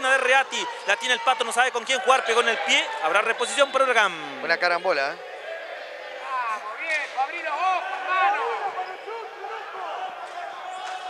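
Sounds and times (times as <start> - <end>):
people calling out: 5.6 - 11.0.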